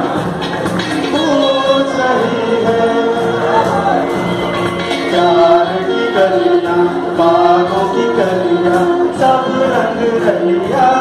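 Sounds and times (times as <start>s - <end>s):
man singing through pa: 1.0s - 4.2s, 4.9s - 11.0s.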